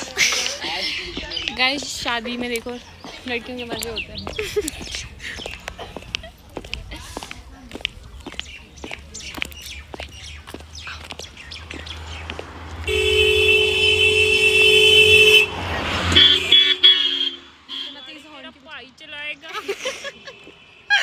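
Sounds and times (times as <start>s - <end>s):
two-note vehicle horn blast: 12.9s - 17.9s.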